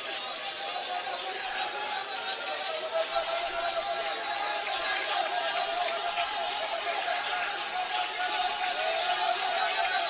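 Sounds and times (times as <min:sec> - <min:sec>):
congregation praying aloud: 0:00.0 - 0:10.0.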